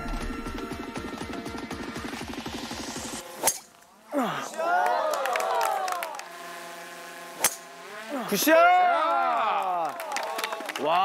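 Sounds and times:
crowd exclaiming whoa: 4.2s - 6.2s, 8.2s - 11.0s
golf driver striking ball: 7.4s - 7.8s.

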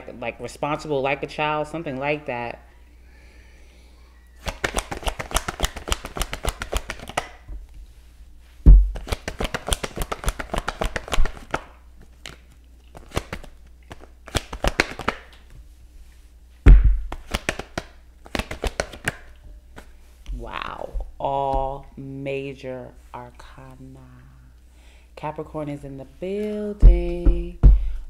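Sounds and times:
cards being shuffled: 4.4s - 7.4s, 8.9s - 15.6s, 16.8s - 20.4s
loud thumps: 8.6s - 9.0s, 16.6s - 17.1s, 26.8s - 28.0s.

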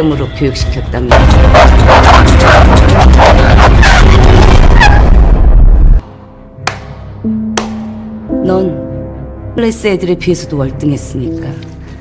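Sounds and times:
dramatic music: 1.0s - 12.0s.

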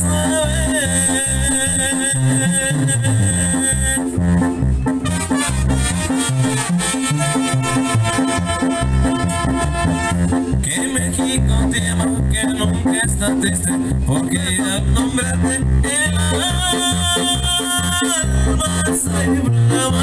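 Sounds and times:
brass band over loudspeakers: 0.0s - 20.0s
drums and bass: 0.0s - 20.0s.

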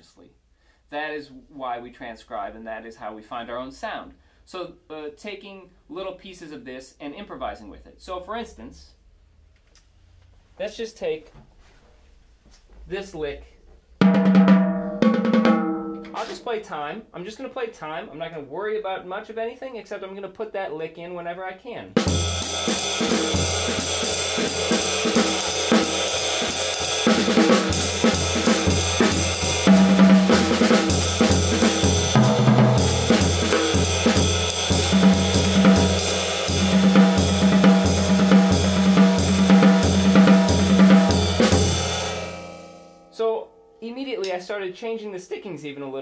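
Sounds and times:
jazz drum kit swing playing: 14.0s - 16.6s, 22.0s - 42.8s.

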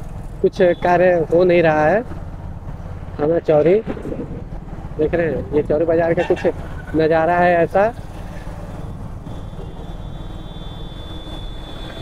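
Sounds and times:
road noise: 0.0s - 12.0s
faint high steady tone: 8.8s - 12.0s.

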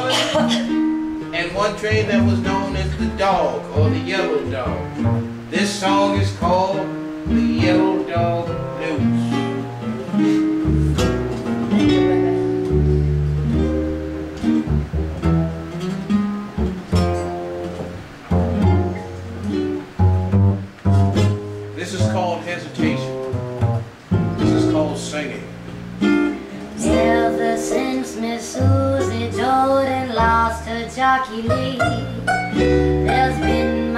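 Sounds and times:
acoustic guitar: 0.0s - 33.9s
banjo: 0.0s - 33.9s
upright double bass: 0.0s - 33.9s.

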